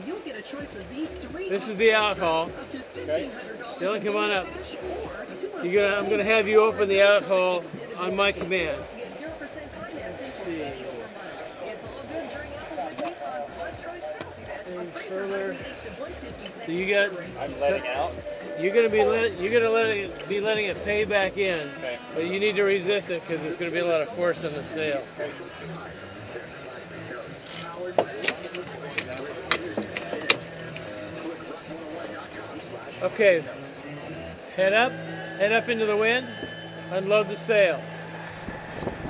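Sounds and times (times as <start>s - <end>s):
indistinct voices talking: 0.0s - 39.0s
water rushing along a hull: 0.0s - 39.0s
wind rushing: 35.0s - 39.0s
wind and water rushing: 37.0s - 39.0s.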